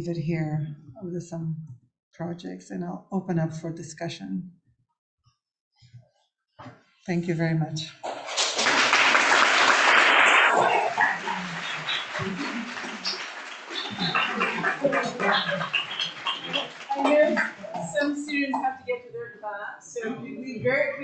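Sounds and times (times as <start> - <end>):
audience applauding: 8.0 - 18.2
murmur of voices: 9.4 - 21.0.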